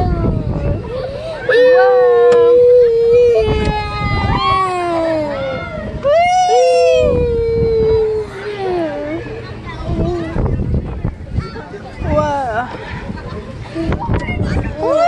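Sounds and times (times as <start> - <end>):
children crying out: 0.0 - 10.5.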